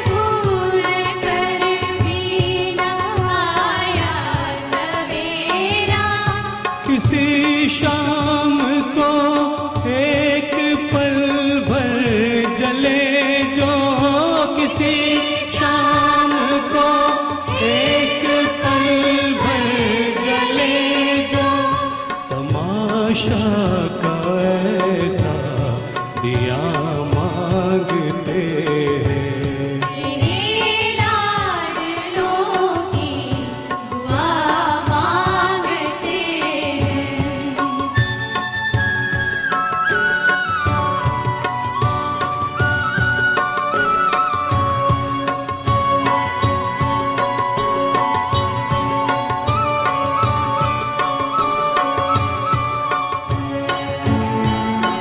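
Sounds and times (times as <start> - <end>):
steady percussion: 0.0 - 55.0
man singing: 6.8 - 30.6
orchestra with violins: 37.6 - 55.0.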